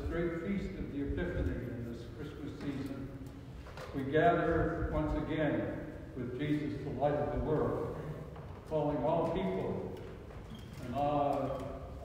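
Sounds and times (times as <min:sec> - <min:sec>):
man speaking: 0:00.0 - 0:03.1, 0:03.8 - 0:10.0, 0:10.8 - 0:12.0.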